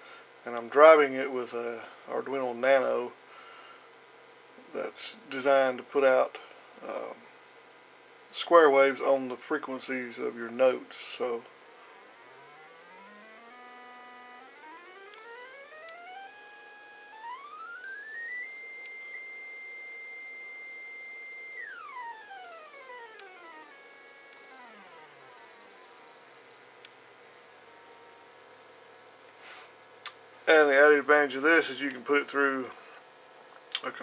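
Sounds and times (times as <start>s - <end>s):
faint steady hum: 0.0s - 34.0s
buzzy electronic square wave tone: 9.4s - 29.3s.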